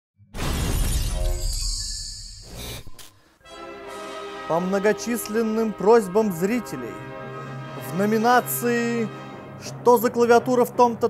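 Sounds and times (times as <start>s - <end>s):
glass shattering: 0.4s - 2.6s.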